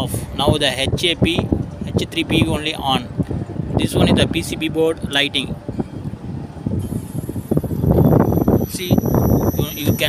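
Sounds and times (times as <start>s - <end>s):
condensing unit low rumble: 0.0s - 10.0s
high-pitched whine: 6.6s - 10.0s.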